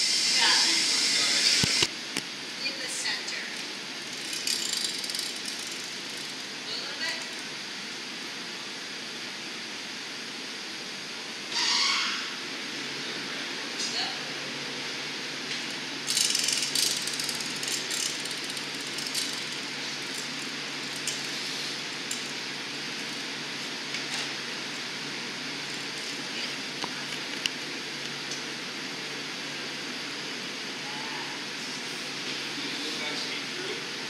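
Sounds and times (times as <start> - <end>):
steady background hum: 0.0 - 34.0.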